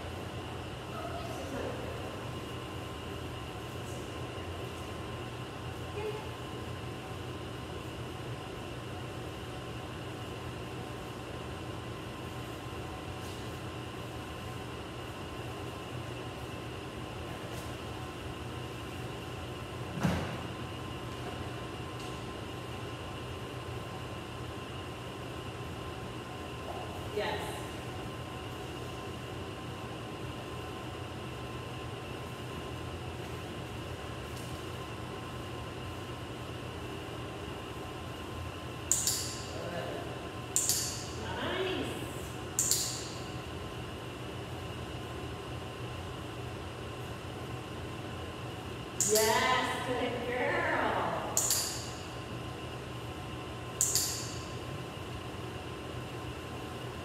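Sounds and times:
steady mechanical hum: 0.0 - 57.0
dog-training clicker clicks: 38.9 - 39.5, 40.6 - 41.0, 42.6 - 43.2, 49.0 - 49.3, 51.4 - 51.9, 53.8 - 54.4.

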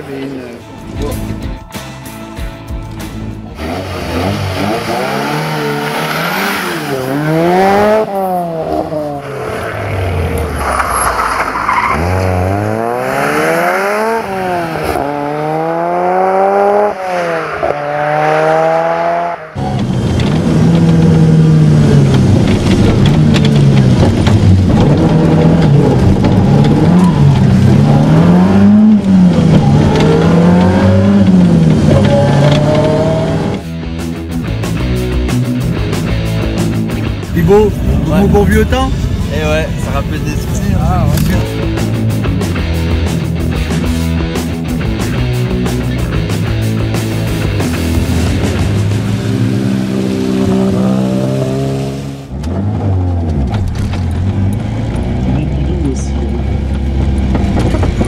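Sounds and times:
car engine revving through gears: 3.4 - 33.8, 34.4 - 58.0.

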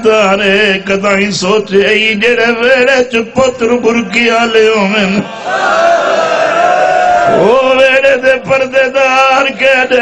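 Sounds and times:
person chanting into microphone: 7.2 - 10.0.

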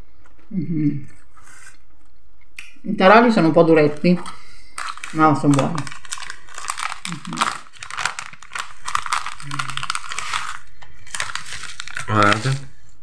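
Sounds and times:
plastic packaging crinkling: 3.9 - 13.0.

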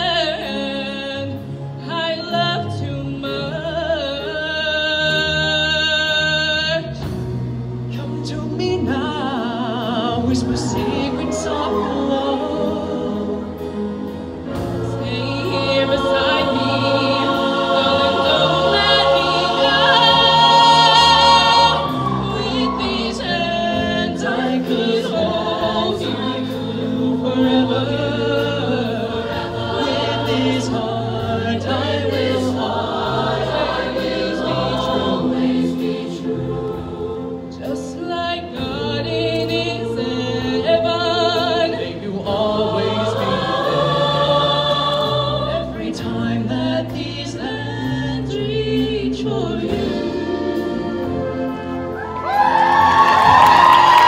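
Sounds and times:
choir singing in harmony: 0.0 - 54.0.

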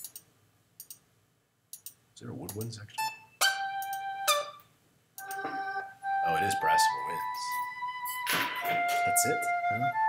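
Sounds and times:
synthesizer melodic notes: 5.2 - 10.0.

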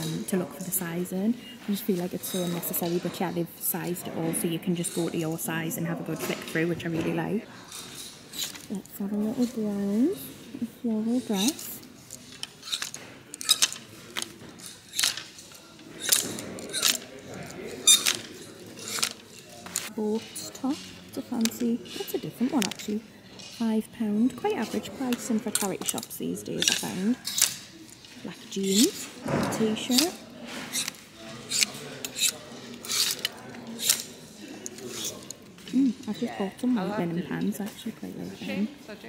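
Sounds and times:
hangers scraping on metal rail: 7.7 - 8.8, 11.1 - 23.6, 28.4 - 35.6.

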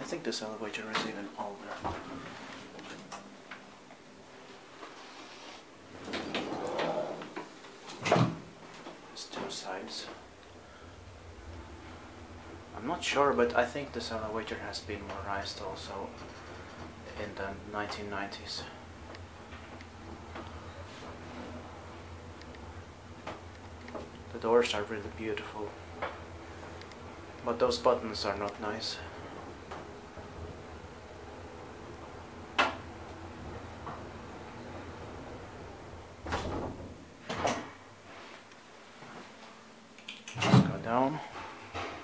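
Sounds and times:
elevator hum: 5.7 - 37.2.

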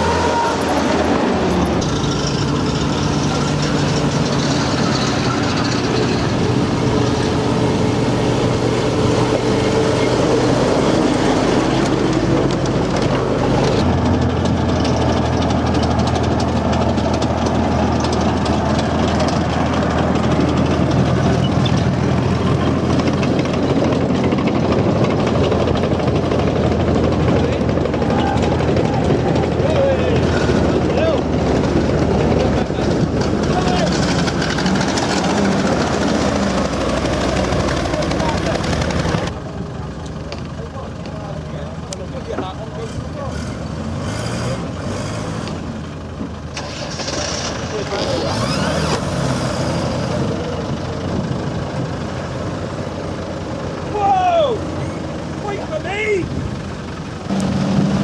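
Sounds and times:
jeep engine driving: 0.0 - 58.0
tracked vehicle engine: 0.0 - 58.0
indistinct voices: 27.1 - 43.8.

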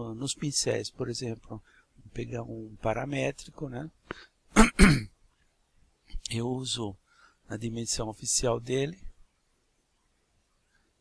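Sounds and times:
man clearing his throat: 4.6 - 5.1.

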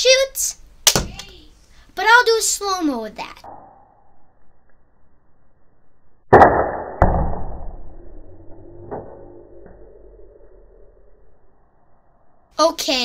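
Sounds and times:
long low rumble: 7.6 - 12.5.

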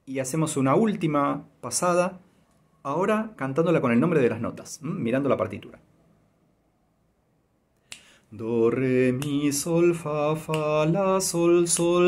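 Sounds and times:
sharp intake of breath: 7.8 - 8.3.

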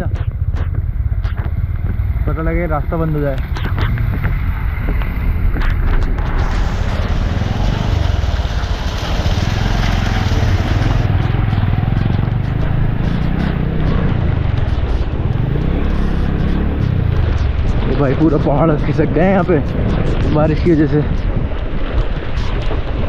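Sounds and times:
motorcycle engine running: 0.0 - 23.0
wind noise on microphone: 0.0 - 23.0
heavy rain hissing: 6.2 - 11.2.

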